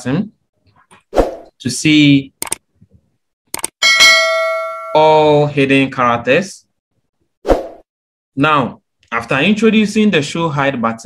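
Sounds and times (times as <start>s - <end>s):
quick double click: 3.5s - 3.7s
bright bell chime: 3.8s - 5.3s.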